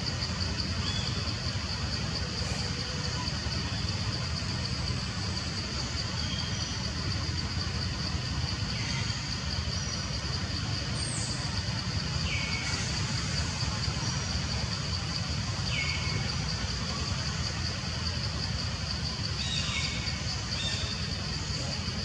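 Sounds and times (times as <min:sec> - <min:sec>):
high-pitched insect drone: 0:00.0 - 0:22.0.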